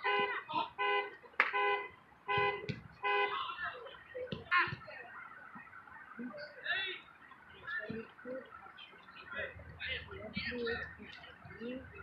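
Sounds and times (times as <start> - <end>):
horn honks: 0.0 - 3.8
faint voices: 0.0 - 12.0.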